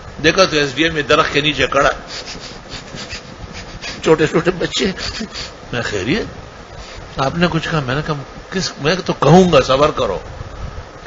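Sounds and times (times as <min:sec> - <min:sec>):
scratchy rustling and rubbing: 0:02.1 - 0:04.3.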